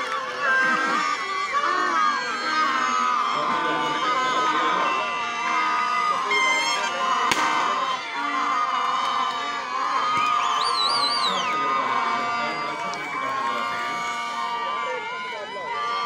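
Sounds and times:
crowd cheering and shouting: 0.0s - 16.0s
long steady tones: 0.0s - 16.0s
high warbling whistle: 6.2s - 8.4s, 10.1s - 15.0s
sharp bang: 7.3s - 8.0s.

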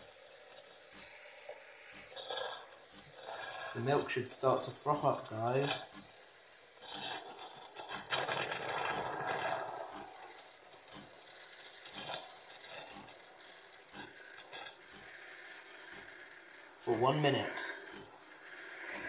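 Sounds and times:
milk steaming hiss: 0.0s - 19.0s.

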